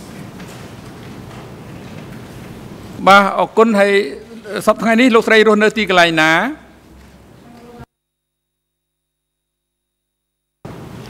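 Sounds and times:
man speaking into a microphone: 3.0 - 6.8.

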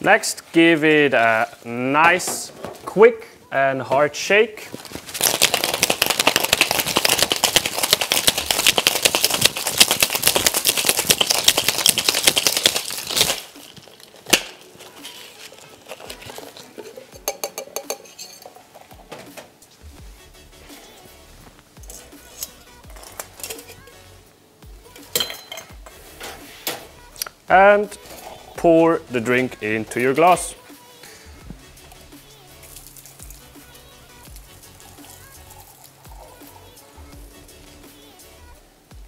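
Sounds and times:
ice rattling in cocktail shaker: 5.0 - 18.8, 34.3 - 36.4
metal and glass clinks: 17.2 - 18.6, 25.2 - 25.8.

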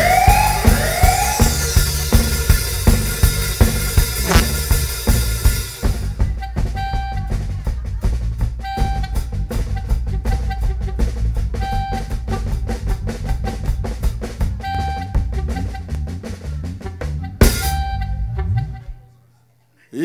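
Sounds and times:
reggae drum kit: 0.0 - 18.9
bass guitar groove: 0.6 - 19.0.

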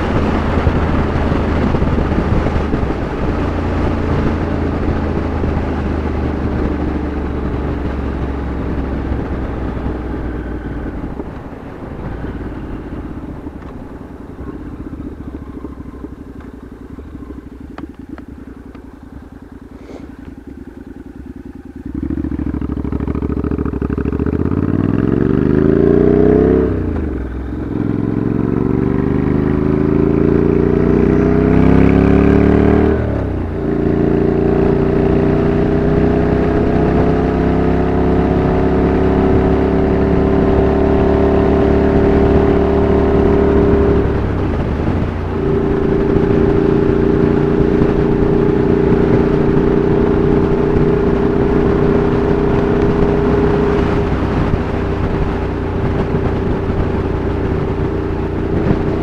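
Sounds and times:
motorcycle engine accelerating: 0.0 - 59.0.

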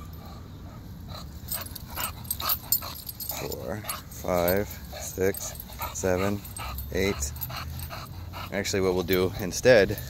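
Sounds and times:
dog breathing sounds: 0.0 - 10.0
light clinks: 1.1 - 10.0.

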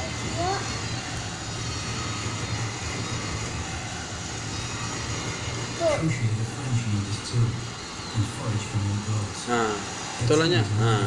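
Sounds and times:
low droning hum: 0.0 - 11.0.

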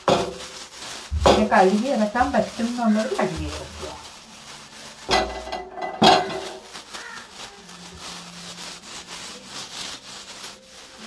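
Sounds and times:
hand scrubbing steel stove: 0.0 - 11.0.

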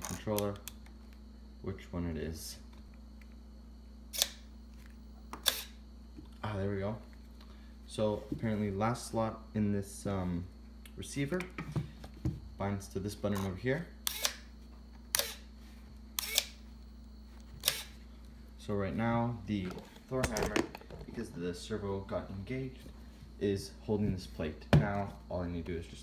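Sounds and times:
faint steady hum: 0.0 - 26.0
servo whirring: 4.1 - 5.8, 14.0 - 14.5, 16.2 - 16.6, 17.4 - 18.0.

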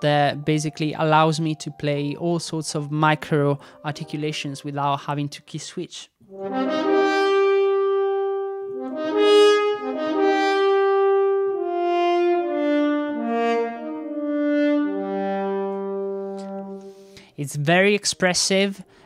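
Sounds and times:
french horns playing legato: 6.3 - 17.2.

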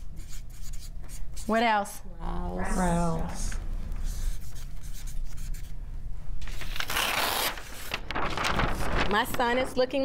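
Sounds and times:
marker scratching on paper: 0.0 - 1.6, 4.0 - 5.8
low room rumble: 1.6 - 10.0.

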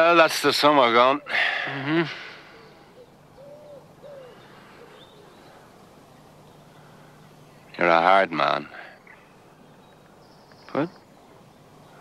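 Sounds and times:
faint low hum: 0.0 - 12.0
pigeon cooing: 2.1 - 5.4.

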